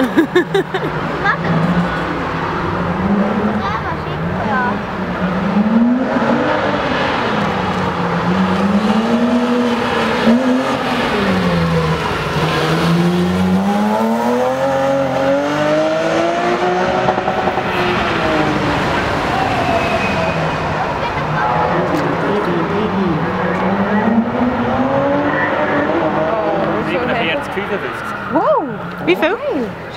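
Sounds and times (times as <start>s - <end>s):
race car engine revving: 0.9s - 29.4s.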